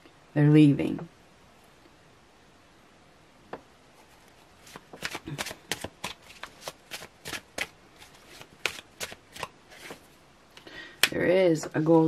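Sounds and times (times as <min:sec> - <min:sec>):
cards being shuffled: 0:04.0 - 0:10.1.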